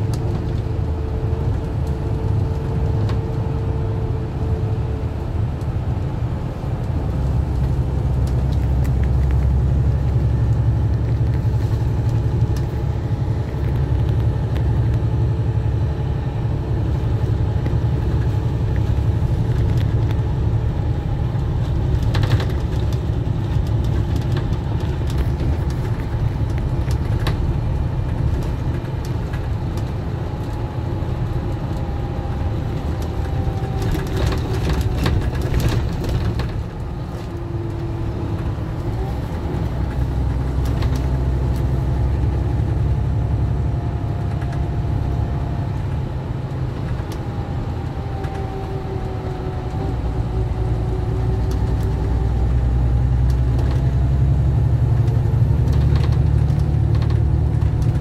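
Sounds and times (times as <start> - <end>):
coach engine and road rumble: 0.0 - 58.0.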